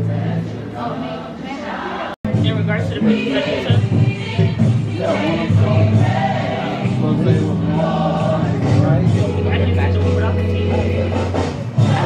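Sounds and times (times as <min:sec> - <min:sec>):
choir singing: 0:00.0 - 0:02.2, 0:02.8 - 0:12.0.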